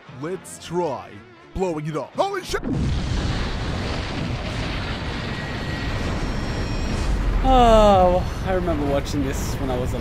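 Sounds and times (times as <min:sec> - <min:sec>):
cartoon bomb explosion: 0:02.6 - 0:08.1.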